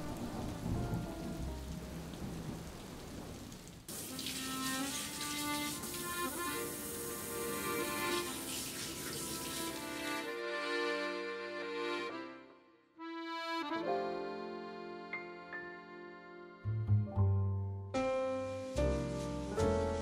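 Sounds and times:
low thunder rumbles: 0.0s - 4.0s
steady rain: 0.0s - 10.4s, 18.6s - 20.0s
music with sustained notes: 4.2s - 20.0s.

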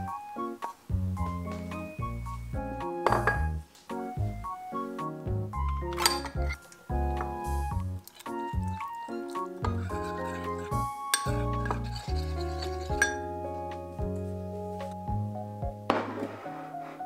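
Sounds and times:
background music with bass: 0.0s - 16.2s
spoon clinking on ceramic bowl: 3.1s - 3.5s, 6.0s - 6.8s, 9.6s - 13.3s
spoon scraping bowl: 8.1s - 8.4s, 9.1s - 13.3s.

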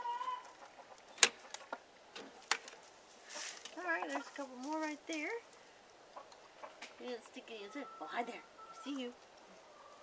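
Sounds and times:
hen calling: 0.0s - 1.8s, 7.5s - 10.0s.

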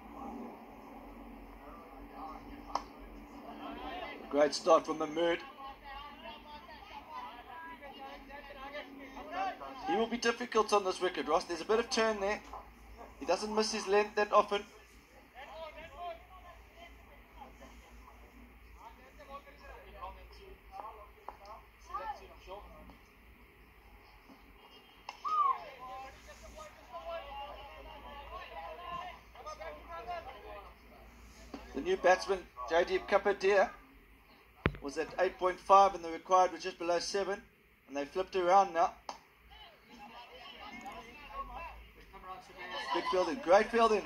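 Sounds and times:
steady low hum: 0.0s - 25.2s
faint voices: 11.0s - 35.0s.

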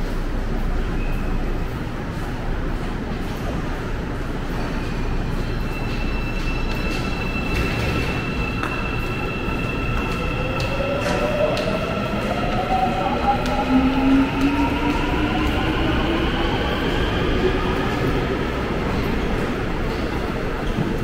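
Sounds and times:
subway train rumble: 0.0s - 21.0s.

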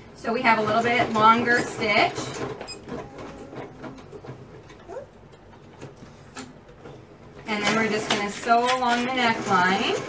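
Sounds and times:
sewing machine stitching: 7.4s - 10.0s.

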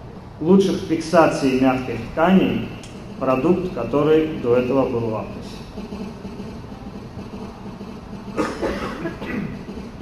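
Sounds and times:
low hum and rumble of hall: 0.0s - 10.0s.

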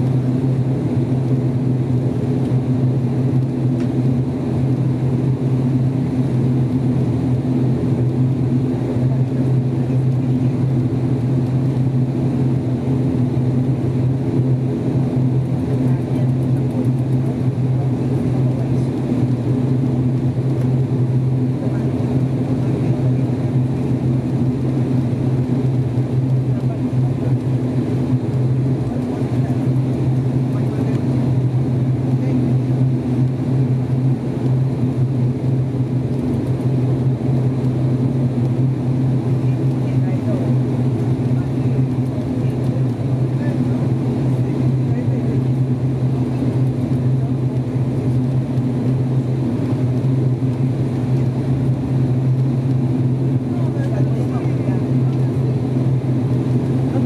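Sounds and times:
low propeller drone: 0.0s - 57.0s.

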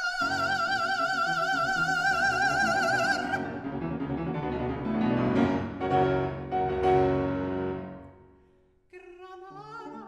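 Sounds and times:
grand piano chords: 0.3s - 8.8s.

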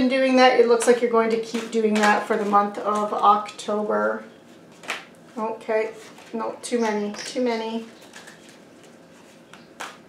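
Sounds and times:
cards being shuffled: 4.7s - 5.1s, 7.1s - 10.0s.

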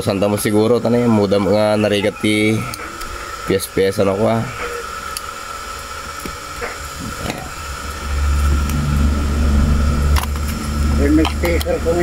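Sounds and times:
faint constant whine: 0.0s - 12.0s
loud low hum: 0.0s - 12.0s
steady hiss: 0.0s - 12.0s.

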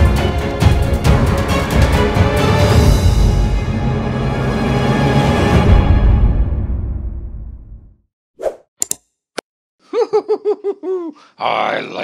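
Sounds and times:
cartoon-style laugh: 9.9s - 11.2s.

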